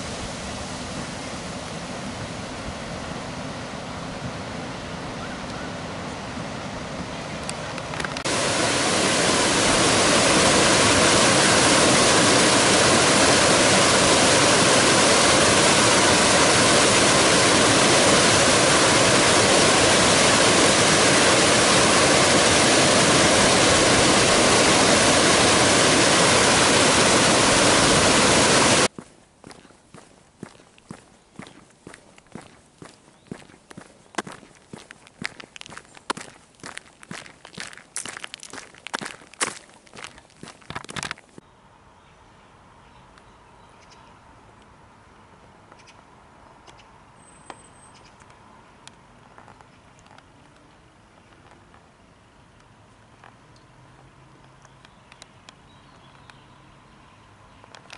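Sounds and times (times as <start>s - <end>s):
river rapids rushing: 8.3s - 28.9s
footsteps on gravel: 28.9s - 41.4s.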